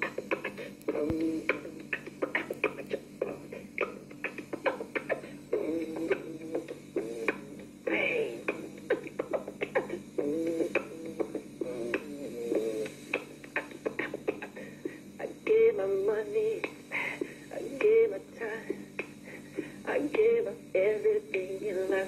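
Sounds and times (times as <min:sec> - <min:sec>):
man beatboxing: 0:00.0 - 0:14.7.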